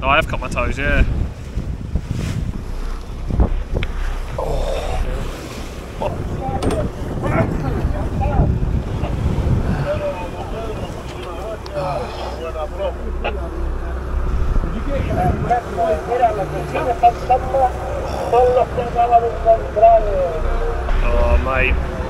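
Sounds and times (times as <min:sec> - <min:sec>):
water rushing along hull: 0:00.0 - 0:22.0
wind buffeting microphone: 0:00.0 - 0:22.0.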